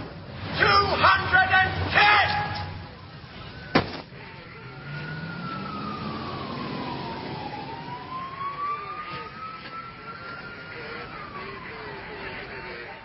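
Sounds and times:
emergency vehicle siren wailing: 0.6s - 13.0s.

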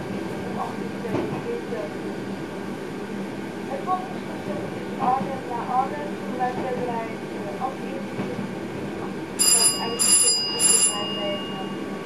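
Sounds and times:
train running noise: 0.0s - 12.0s
warning bell ringing: 9.4s - 12.0s.

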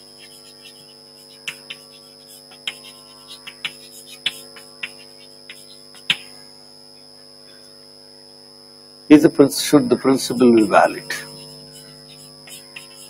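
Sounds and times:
chalk tapping on blackboard: 0.0s - 6.4s, 10.6s - 13.0s
electrical hum: 0.0s - 13.0s.

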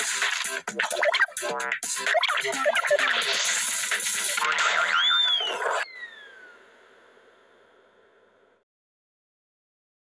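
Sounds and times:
jumble of cartoon sound effects: 0.9s - 3.6s, 4.3s - 6.6s
whistle-like glide: 4.9s - 6.7s.

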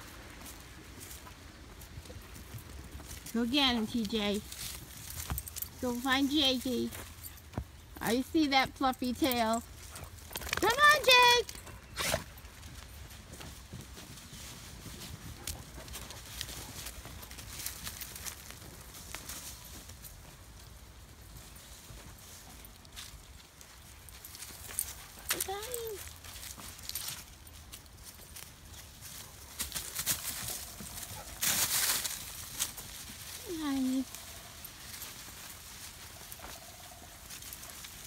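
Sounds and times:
footsteps crunching through dry leaves: 0.0s - 7.9s, 12.2s - 38.0s.

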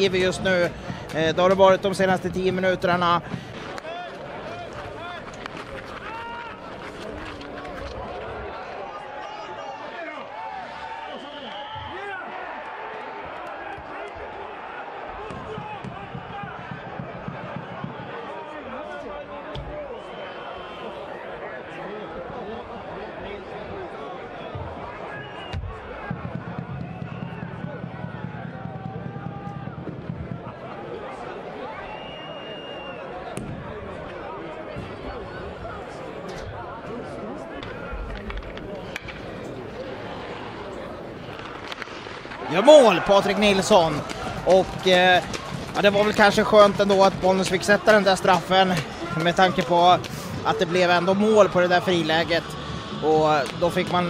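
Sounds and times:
high whistle tones: 11.0s - 12.0s, 31.7s - 33.1s
distant crowd voices: 30.2s - 54.0s.

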